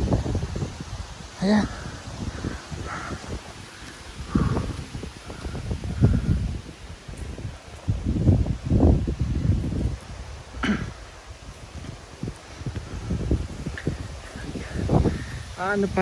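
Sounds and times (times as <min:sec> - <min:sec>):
person breathing heavily: 0:01.4 - 0:06.7, 0:12.4 - 0:15.6.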